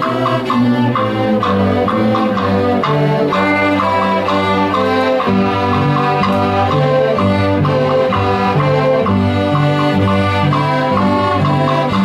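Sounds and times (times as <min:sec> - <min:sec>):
string orchestra playing: 0:00.0 - 0:12.0.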